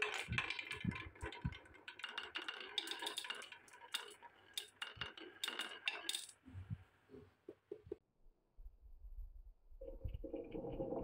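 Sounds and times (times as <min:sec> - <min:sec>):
marbles clicking together: 0:00.0 - 0:06.4
marbles rolling on wooden track: 0:00.0 - 0:06.8.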